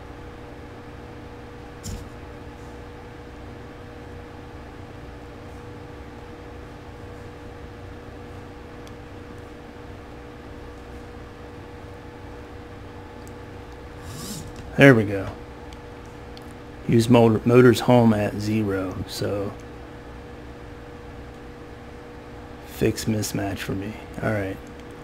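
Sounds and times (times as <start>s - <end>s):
low constant hum: 0.0s - 25.0s
click: 8.8s - 9.5s, 13.2s - 13.4s, 16.0s - 16.6s, 24.6s - 25.0s.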